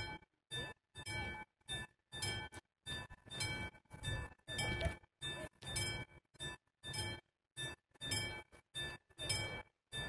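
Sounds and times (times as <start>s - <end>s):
level crossing bell ringing: 0.0s - 10.0s.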